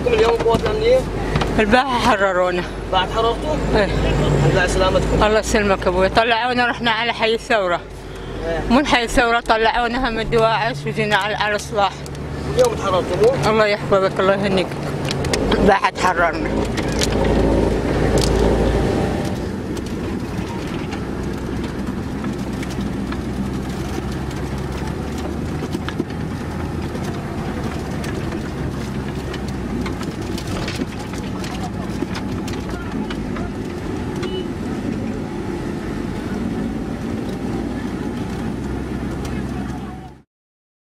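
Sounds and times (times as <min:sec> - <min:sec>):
vehicle engine droning: 0:00.0 - 0:40.2
sharp clicks and knocks: 0:14.6 - 0:15.7, 0:16.4 - 0:35.1.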